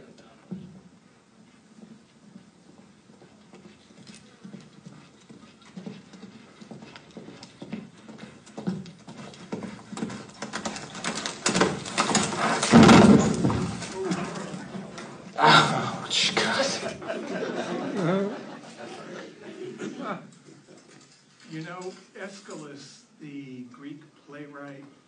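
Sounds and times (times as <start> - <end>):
horse hoofbeats clip-clop: 0.2 - 15.4.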